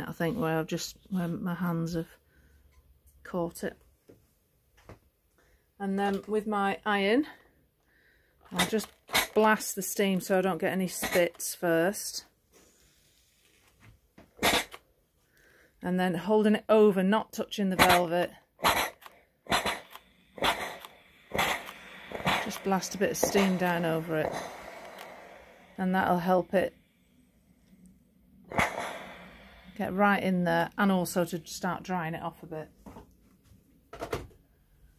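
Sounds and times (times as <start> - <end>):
steam iron hissing: 18.8 - 30.4.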